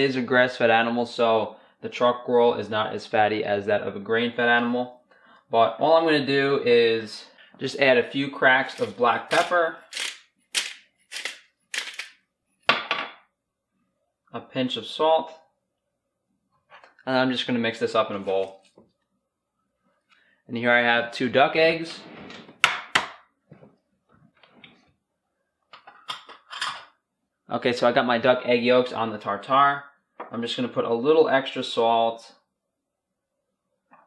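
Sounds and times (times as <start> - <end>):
pepper grinder grinding: 8.6 - 12.2
eggshell cracking and crackling: 8.8 - 12.1.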